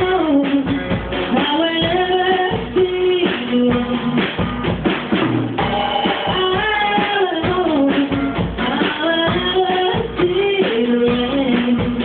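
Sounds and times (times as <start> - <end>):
bass drum and snare beat: 0.0 - 12.0.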